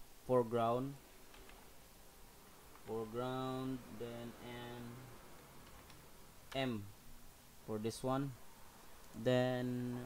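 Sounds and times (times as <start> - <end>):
faint background hum: 0.0 - 10.0
computer keyboard keystrokes: 5.6 - 6.7.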